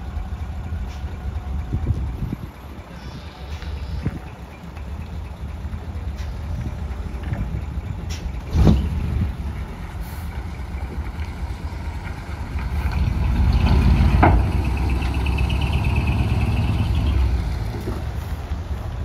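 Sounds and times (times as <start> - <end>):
truck diesel engine accelerating: 0.0 - 19.0
air brake hiss: 10.0 - 10.4.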